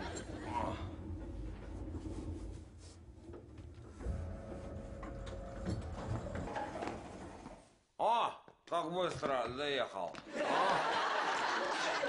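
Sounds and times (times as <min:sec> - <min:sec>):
lift humming and rumbling: 0:00.0 - 0:07.5
knocks and rattles: 0:00.0 - 0:07.7.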